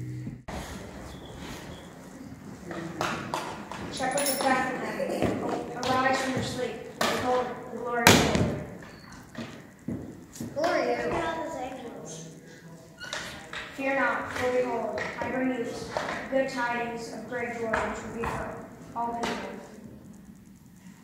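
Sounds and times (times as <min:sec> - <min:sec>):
young children's voices: 0:03.9 - 0:08.7, 0:10.4 - 0:12.5, 0:13.8 - 0:19.7.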